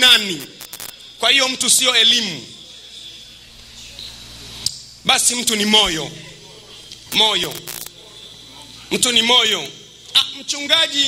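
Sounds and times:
person speaking: 7.1 - 8.1.

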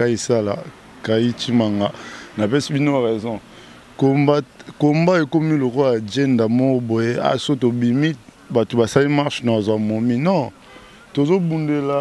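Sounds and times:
man talking into microphone: 0.0 - 12.0.

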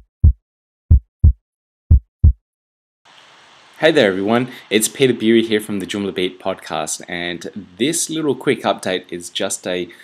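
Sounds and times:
heartbeat thumps: 0.0 - 2.4.

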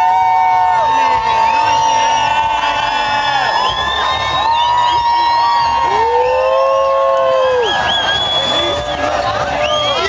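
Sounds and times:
crowd cheering and whooping: 0.0 - 10.0.

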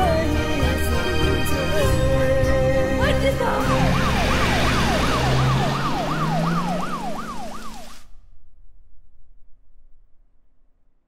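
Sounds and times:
ambulance siren yelping: 3.3 - 8.1.

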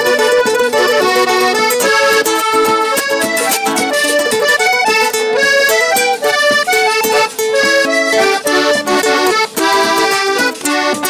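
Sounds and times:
accordion melody: 0.0 - 11.0
guitar: 0.0 - 11.0
hand percussion beat: 0.0 - 11.0.

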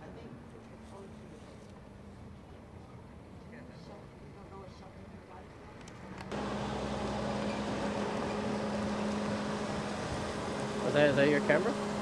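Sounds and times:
idling vehicle engine hum: 5.6 - 12.0.

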